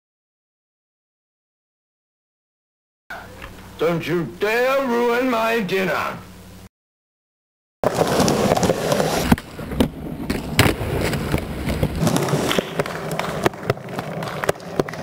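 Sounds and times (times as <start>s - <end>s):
skateboard clacking on ground: 7.8s - 15.0s
skateboard wheels rolling on concrete: 7.8s - 15.0s.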